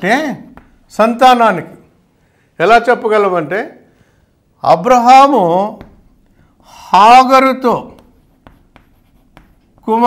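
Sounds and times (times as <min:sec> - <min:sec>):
chalk tapping on blackboard: 0:00.4 - 0:00.9, 0:05.6 - 0:06.3, 0:07.6 - 0:10.0.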